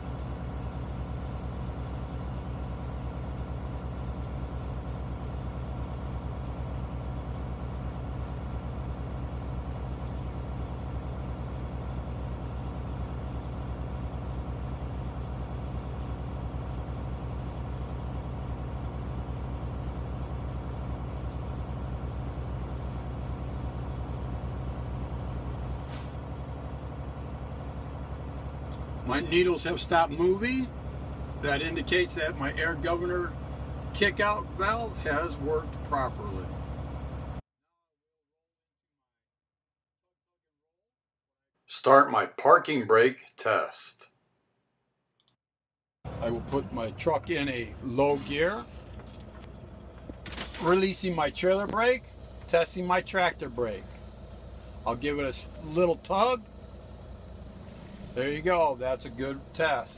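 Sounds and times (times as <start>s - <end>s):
diesel truck engine running: 0.0s - 37.4s, 46.0s - 59.9s
short burst of air: 25.8s - 26.2s
air compressor building pressure: 50.0s - 59.9s.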